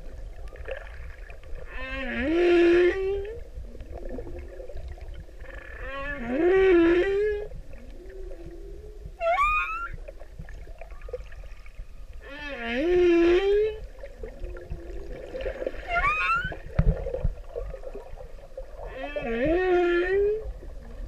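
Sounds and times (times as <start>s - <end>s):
humpback whale song: 0.3s - 21.0s.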